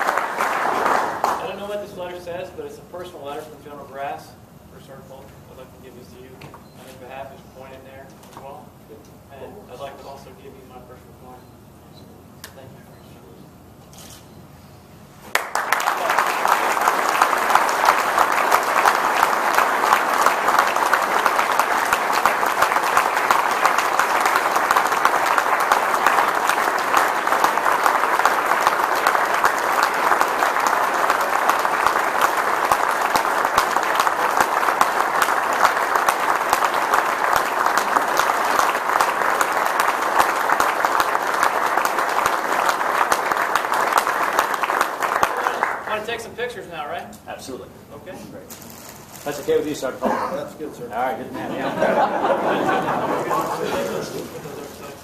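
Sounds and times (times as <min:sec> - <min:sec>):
audience applause: 0:00.0 - 0:01.5, 0:15.3 - 0:46.1, 0:51.0 - 0:55.0.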